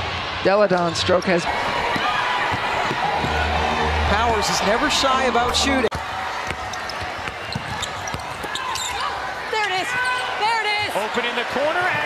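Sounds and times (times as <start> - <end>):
arena background noise: 0.0 - 12.0.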